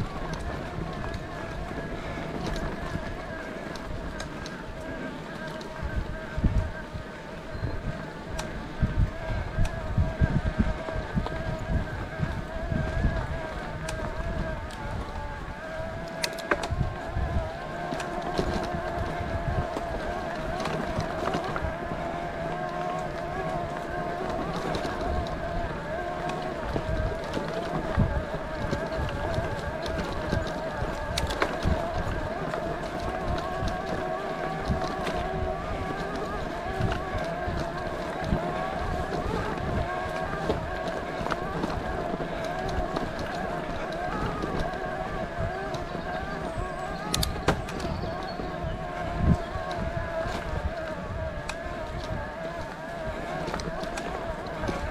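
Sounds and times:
bike clicks and rattles: 0.0s - 54.9s
electric bike motor whining: 0.0s - 54.9s
tyres rolling on gravel: 0.0s - 54.9s
wind rumble on microphone: 0.0s - 54.9s.

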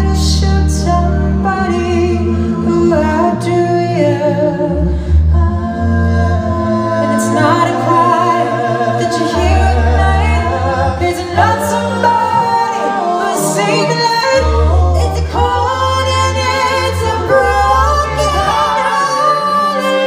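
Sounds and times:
backing vocal harmonies: 0.0s - 20.0s
deep vocal bass line: 0.0s - 20.0s.

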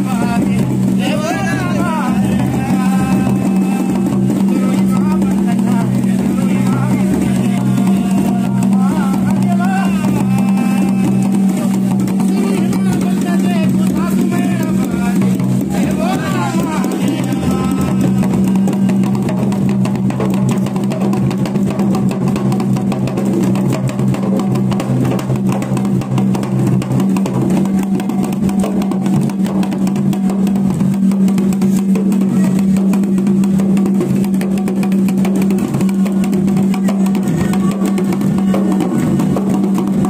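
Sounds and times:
fast steady drumming: 0.0s - 40.0s.

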